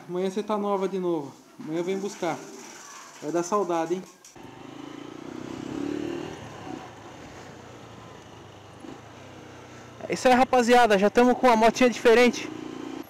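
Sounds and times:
motorcycle engine running: 4.4 - 13.0.

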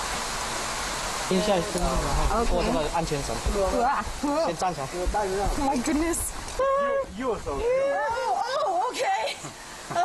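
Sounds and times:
woman exclaiming: 6.6 - 9.4.

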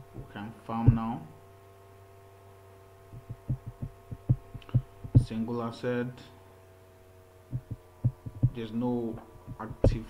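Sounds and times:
soft low thumps: 0.0 - 1.3, 3.1 - 5.5, 7.5 - 10.0
low electrical hum: 0.0 - 10.0.

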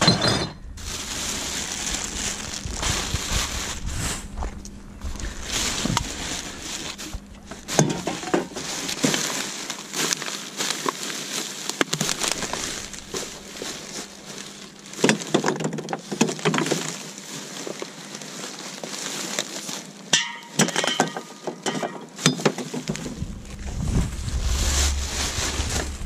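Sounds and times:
plastic bags crinkling: 0.8 - 26.0
bottles and cans knocking: 20.2 - 23.1.

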